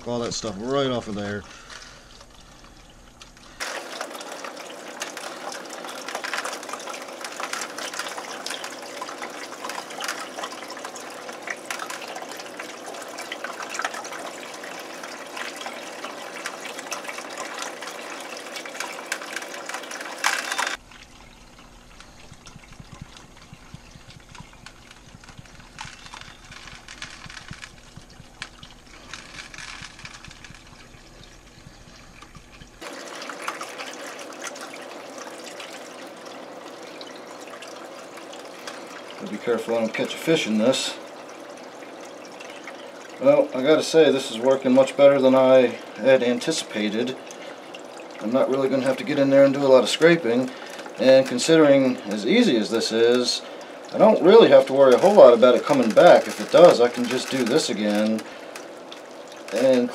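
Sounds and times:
water rushing through siphon hose: 0.0 - 59.9
low hum: 20.7 - 32.9.

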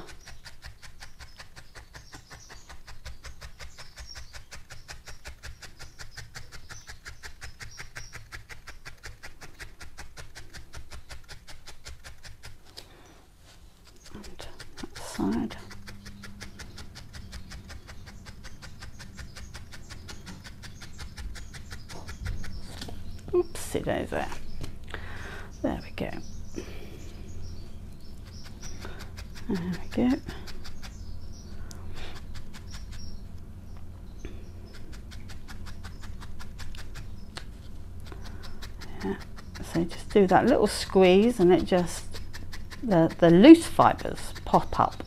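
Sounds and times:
felting needle clicking: 0.0 - 12.9, 13.8 - 23.4, 27.5 - 45.0.

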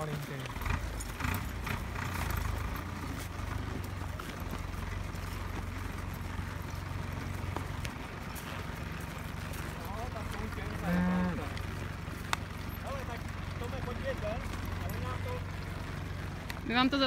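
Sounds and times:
horse hooves on grass: 0.0 - 17.0.

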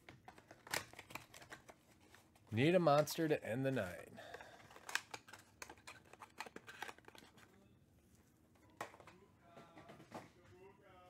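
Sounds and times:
card packs clicking and tapping: 0.0 - 7.5.

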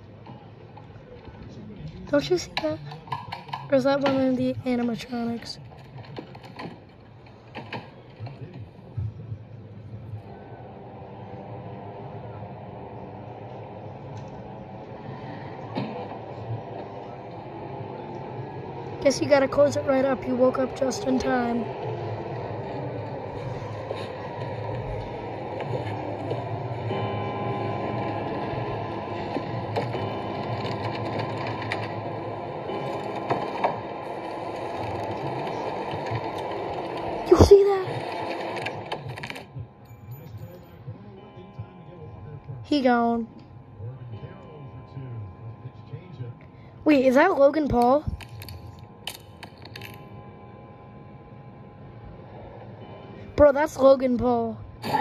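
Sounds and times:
low drone: 9.7 - 55.0.

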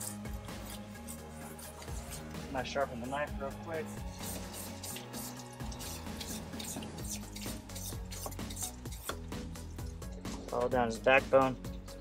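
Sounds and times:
knife sharpening scrapes: 0.0 - 2.4, 4.1 - 9.2
background music: 0.0 - 12.0.

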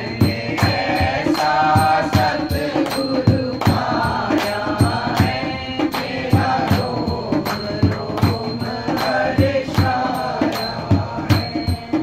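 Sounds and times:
men chanting a devotional song: 0.0 - 12.0
hand clapping: 0.5 - 11.5.

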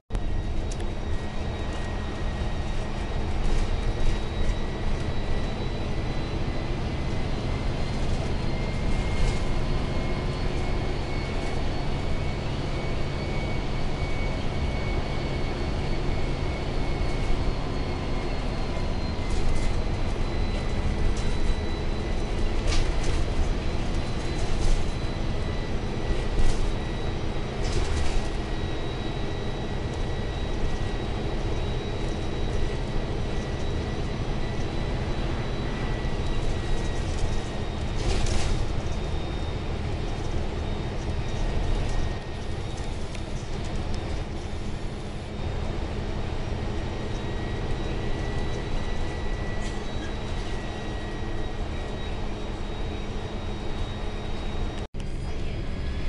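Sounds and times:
bus engine and road rumble: 0.1 - 56.0
thin high whine: 0.1 - 56.0.

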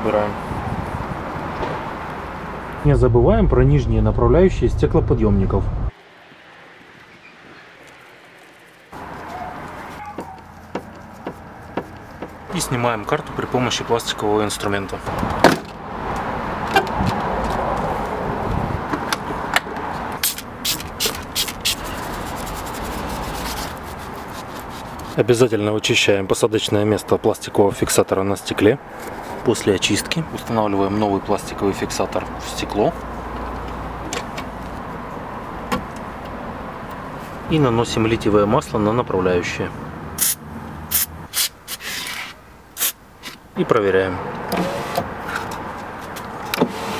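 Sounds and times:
background noise: 0.0 - 46.9.

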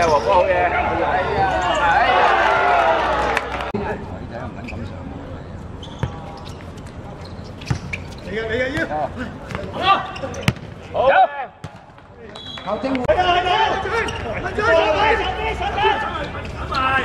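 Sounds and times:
players shouting: 0.0 - 3.7, 8.6 - 11.8, 13.0 - 17.0.

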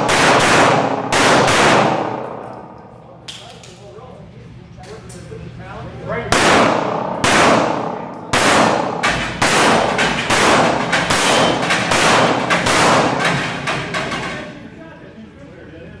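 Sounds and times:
handgun shots echoing: 0.0 - 2.8, 6.4 - 13.3
bullets hitting steel plates: 6.3 - 14.6.

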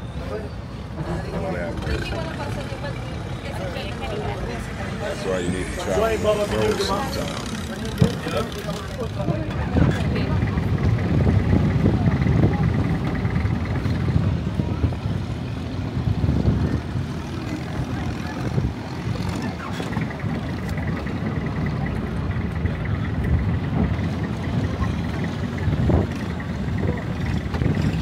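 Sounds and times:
boat engine rumbling: 0.0 - 28.0
wind noise on microphone: 9.3 - 28.0.

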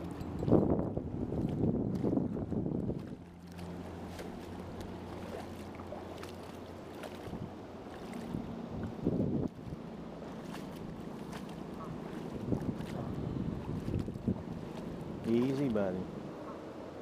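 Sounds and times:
wind on microphone: 0.0 - 3.3, 7.0 - 16.6
water sloshing and splashing: 0.0 - 16.6.

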